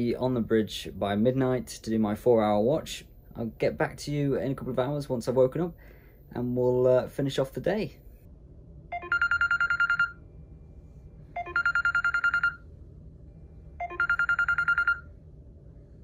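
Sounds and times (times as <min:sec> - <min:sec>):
phone alarm beeping: 0:08.9 - 0:10.2, 0:11.4 - 0:12.6, 0:13.8 - 0:15.1.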